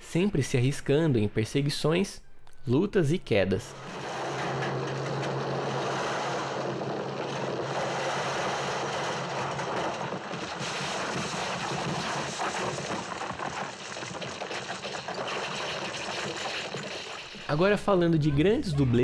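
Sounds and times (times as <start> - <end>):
gravel and rocks sliding: 3.7 - 17.8.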